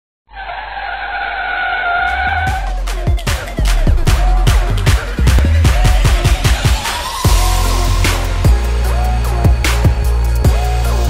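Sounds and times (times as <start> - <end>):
tyre screech: 0.3 - 2.8
electronic dance music: 2.1 - 11.0.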